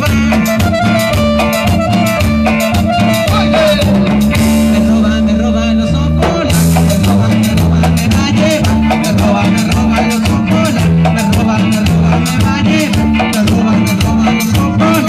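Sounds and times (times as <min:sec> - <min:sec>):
electric bass: 0:00.0 - 0:15.0
electronic keyboard melody: 0:00.0 - 0:15.0
percussion: 0:00.0 - 0:15.0.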